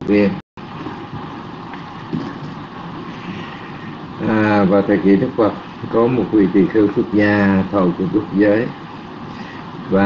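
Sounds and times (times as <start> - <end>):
microphone line hiss and rumble: 0.0 - 10.0.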